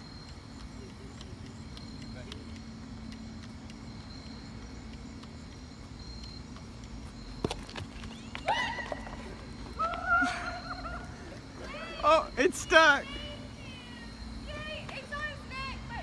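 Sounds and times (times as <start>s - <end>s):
faint constant hum: 0.0s - 16.0s.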